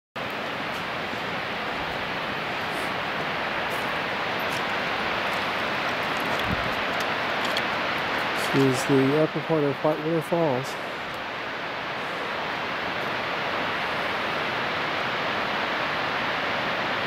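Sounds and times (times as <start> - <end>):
distant waterfall rushing hiss: 0.2 - 17.0.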